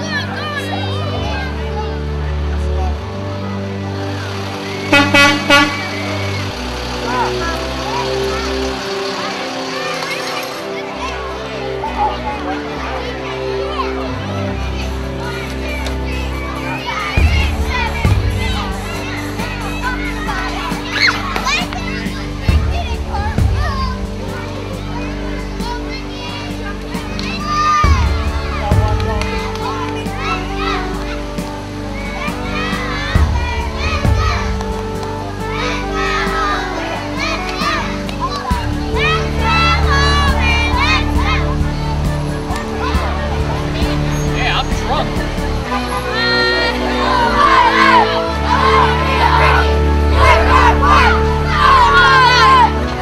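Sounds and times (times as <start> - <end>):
children shouting and cheering: 0.0 - 53.0
music with low sustained notes: 0.0 - 53.0
music with thumping bass: 17.2 - 20.9, 21.5 - 26.3, 26.9 - 30.7, 31.8 - 35.2
girls shouting cheers: 46.1 - 53.0.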